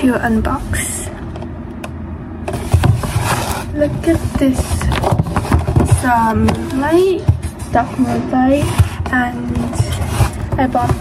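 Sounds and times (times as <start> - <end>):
cardboard box handling rumble: 2.4 - 11.0.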